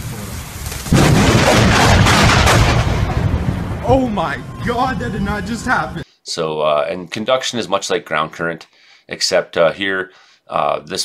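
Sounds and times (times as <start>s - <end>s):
thunderclap: 0.6s - 6.0s.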